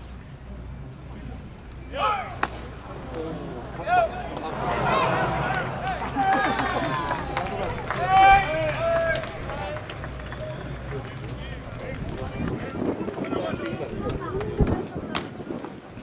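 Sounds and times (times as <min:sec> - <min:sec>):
murmur of voices: 0:00.0 - 0:16.0
voices calling out: 0:00.2 - 0:15.4.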